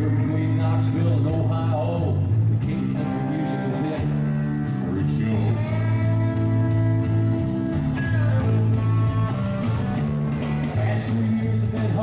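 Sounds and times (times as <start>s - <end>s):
acoustic guitar strumming: 0.0s - 12.0s
live country-rock band: 0.0s - 12.0s.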